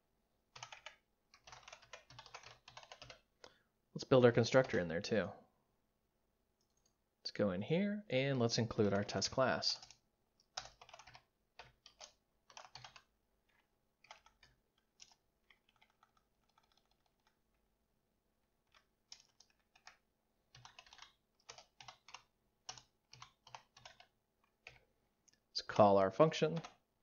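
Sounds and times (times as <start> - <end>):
typing on computer keyboard: 0.5 - 3.3, 8.4 - 17.4, 18.6 - 24.9, 26.5 - 26.8.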